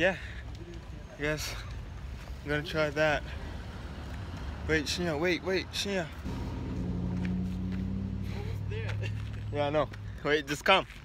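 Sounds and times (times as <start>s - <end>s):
vehicle engine running: 6.2s - 10.3s.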